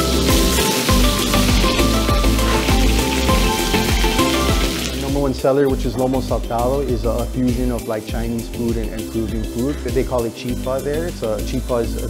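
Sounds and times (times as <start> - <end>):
food sizzling in a wok: 0.0 - 5.4
background music with a beat: 0.0 - 12.0.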